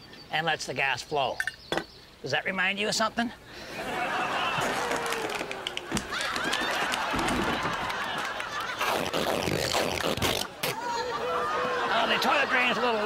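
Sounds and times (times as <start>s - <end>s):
audience laughing: 3.7s - 9.2s, 10.6s - 13.0s.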